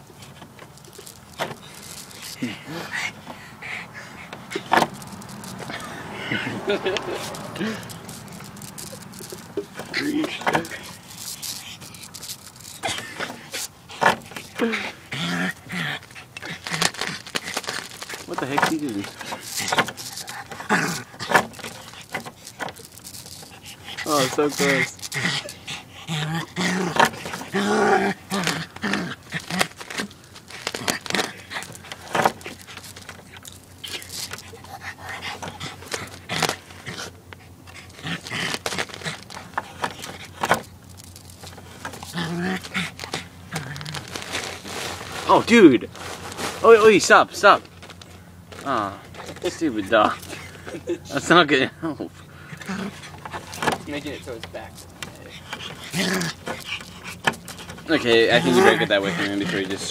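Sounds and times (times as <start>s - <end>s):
dog claws scraping concrete and boards: 0.0s - 51.6s, 52.2s - 59.9s
puppy panting: 0.3s - 27.6s, 28.4s - 43.8s, 49.0s - 59.9s.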